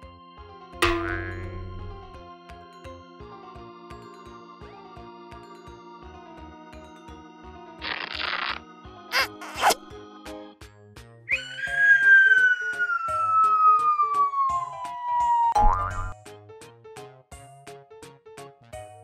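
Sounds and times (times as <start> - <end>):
children's background music: 0.0 - 19.0
cartoon boing: 0.8 - 2.1, 15.6 - 16.2
whistle-like tone sliding downward: 11.3 - 15.6.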